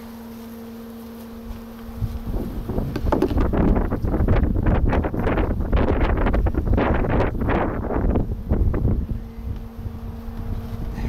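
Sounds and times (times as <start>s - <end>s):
wind buffeting microphone: 1.9s - 11.0s.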